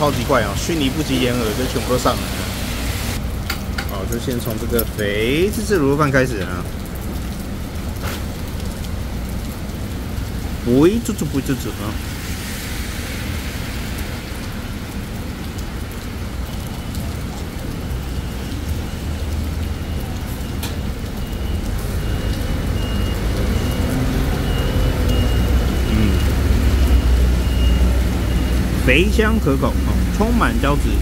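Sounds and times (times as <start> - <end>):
heavy rain hiss: 0.0 - 31.0
road traffic: 0.0 - 31.0.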